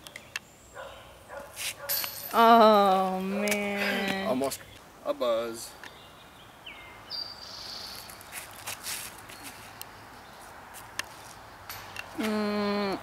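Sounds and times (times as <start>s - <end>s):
birds calling: 0.0s - 13.0s.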